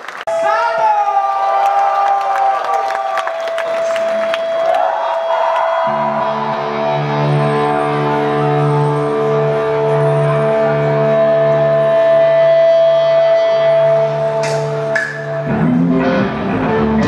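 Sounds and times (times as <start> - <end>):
crowd cheering and clapping: 0.0 - 11.9
live concert music: 0.0 - 17.0.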